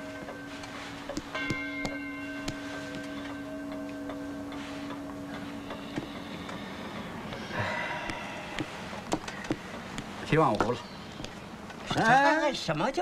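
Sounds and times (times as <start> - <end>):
wall clock gong stroke: 0.0 - 8.8.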